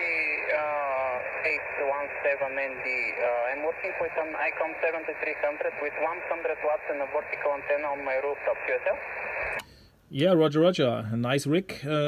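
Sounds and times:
man's voice over shortwave radio: 0.0s - 9.2s
radio hiss: 0.0s - 9.8s.

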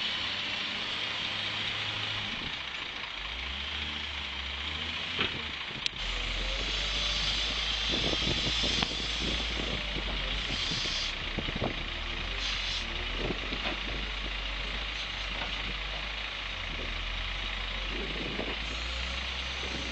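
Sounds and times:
diesel engine running under load: 0.0s - 19.9s.

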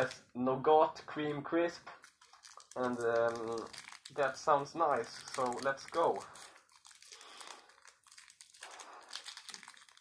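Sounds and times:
wrapper crinkling: 0.0s - 0.2s, 1.9s - 10.0s.

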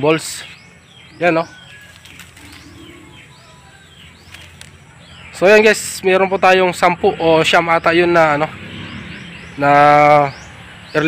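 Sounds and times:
faint bird chirps: 0.2s - 5.5s.

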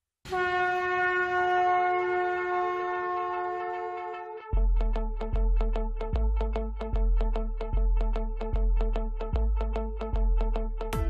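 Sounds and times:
conch shells blown: 0.3s - 4.6s.

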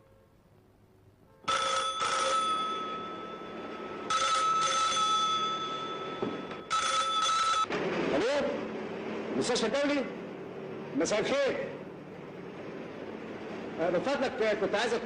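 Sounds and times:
desk telephone ringing: 1.5s - 7.7s.

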